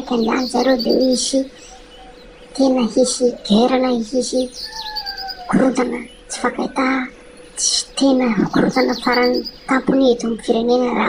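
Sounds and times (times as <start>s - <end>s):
person speaking: 0.0s - 1.6s, 2.5s - 4.6s, 5.5s - 11.0s.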